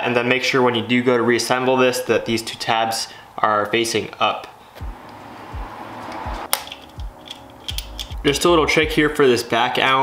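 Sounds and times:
low bumps: 0:04.8 - 0:09.1
metallic click: 0:06.1 - 0:08.4.

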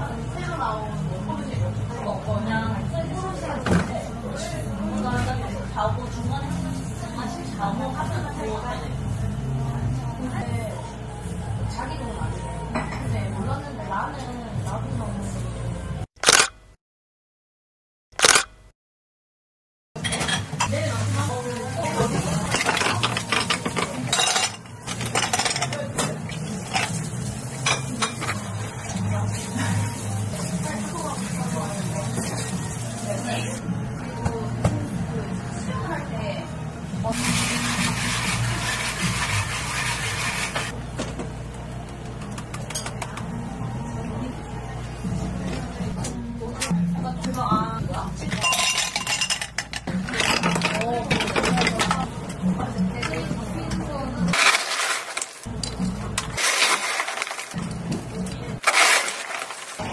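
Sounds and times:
ice cubes clinking in a glass: 0:48.4 - 0:49.6, 0:54.3 - 0:57.6, 0:58.6 - 0:59.9
spoon clinking against glass: 0:48.4 - 0:49.6.

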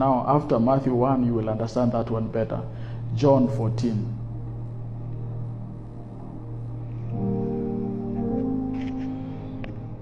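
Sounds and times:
faint background noise: 0:00.0 - 0:10.0
steady low hum: 0:00.0 - 0:10.0.

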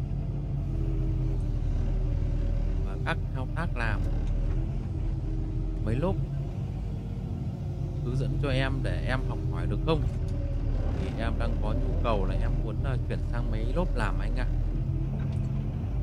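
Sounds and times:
excavator diesel engine droning: 0:00.0 - 0:16.0.

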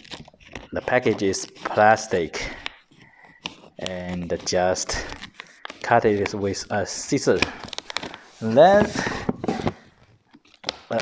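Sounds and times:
plastic bag rustling: 0:00.0 - 0:11.0.

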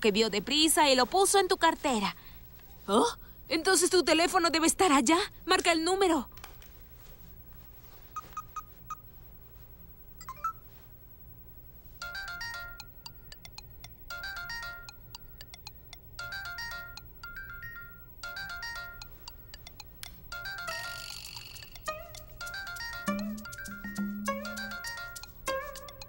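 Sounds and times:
melodic phone ringtone: 0:12.0 - 0:13.0, 0:14.1 - 0:15.0, 0:16.2 - 0:26.0.

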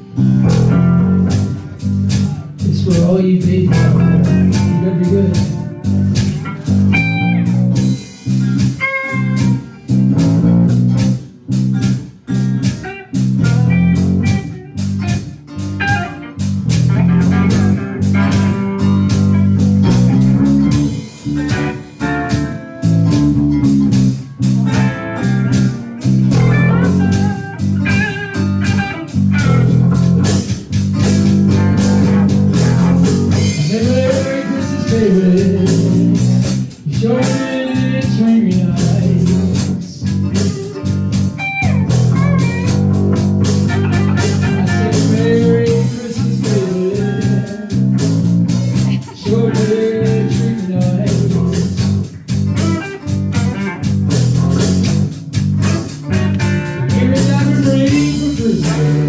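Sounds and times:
bass line: 0:00.0 - 0:59.0
drum kit beat: 0:00.0 - 0:59.0
electric guitars: 0:00.0 - 0:59.0.

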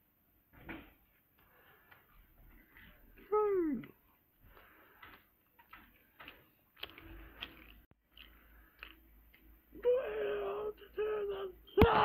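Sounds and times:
person moaning: 0:03.3 - 0:03.9, 0:09.8 - 0:12.0.

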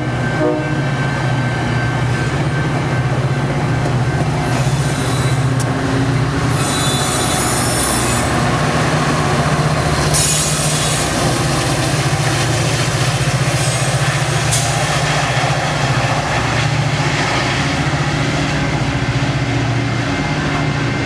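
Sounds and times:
diesel locomotive drone: 0:00.0 - 0:21.0
train rolling past: 0:00.0 - 0:21.0
wheel squeal: 0:04.5 - 0:05.6, 0:06.5 - 0:08.3, 0:10.1 - 0:11.2.

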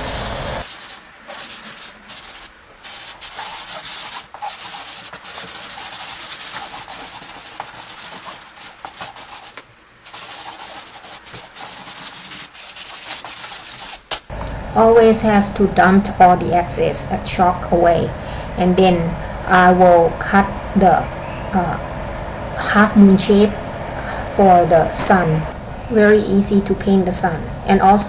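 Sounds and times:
chalk pastel scratching on paper: 0:00.6 - 0:14.1.

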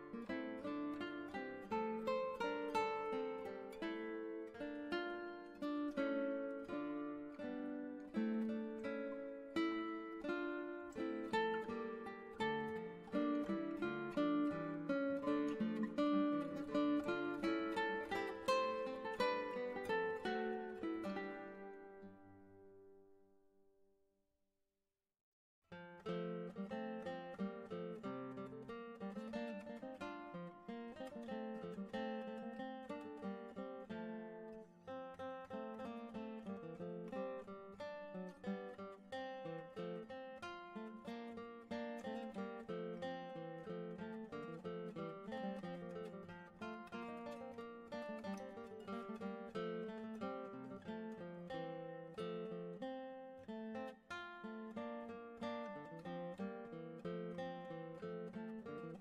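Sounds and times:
acoustic guitar plucking: 0:00.0 - 0:23.0, 0:25.8 - 0:59.0.

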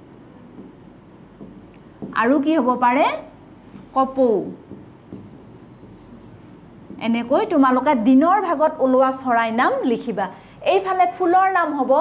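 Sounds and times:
marker writing on a board: 0:00.0 - 0:02.5, 0:03.8 - 0:07.4.

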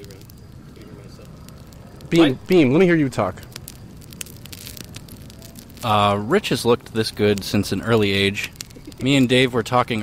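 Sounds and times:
campfire crackling: 0:00.0 - 0:10.0
low background hiss: 0:00.0 - 0:10.0.

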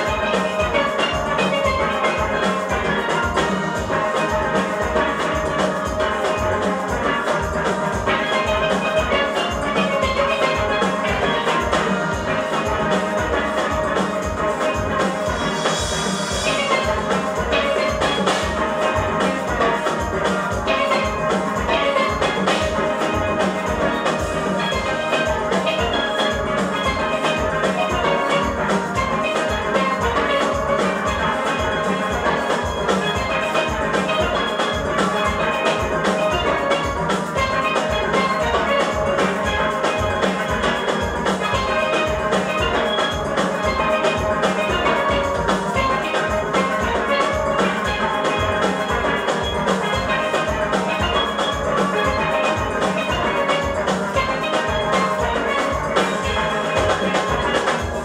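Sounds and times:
steady drum beat: 0:00.0 - 0:58.0
steelpans playing melody: 0:00.0 - 0:58.0.

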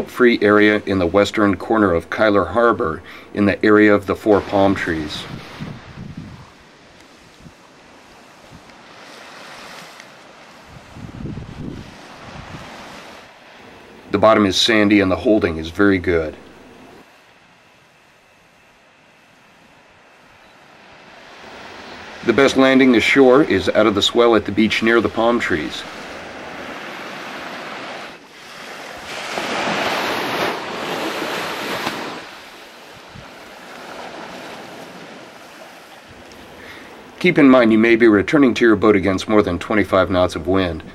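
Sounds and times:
surf washing onto beach: 0:00.0 - 0:18.4, 0:19.0 - 0:40.9
wind: 0:00.0 - 0:40.9
wind buffeting microphone: 0:04.2 - 0:14.2, 0:29.0 - 0:36.5.

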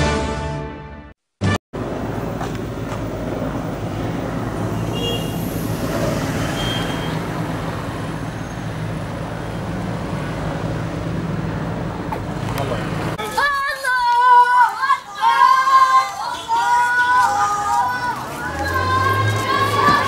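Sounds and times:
street traffic rumble: 0:01.8 - 0:20.0.

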